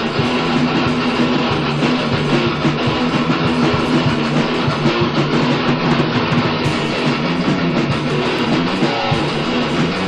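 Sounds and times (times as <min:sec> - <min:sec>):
distorted electric guitars: 0:00.0 - 0:10.0
drums: 0:00.0 - 0:10.0.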